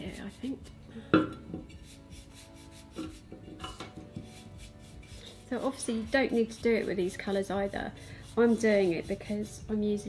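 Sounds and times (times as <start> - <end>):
paint brush scrubbing: 0.0 - 0.6, 1.8 - 3.3, 4.2 - 9.8.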